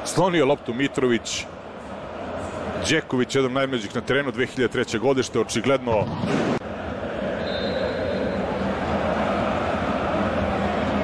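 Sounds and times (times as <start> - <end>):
stadium crowd din: 0.0 - 11.0
faint high whistle: 7.4 - 8.4.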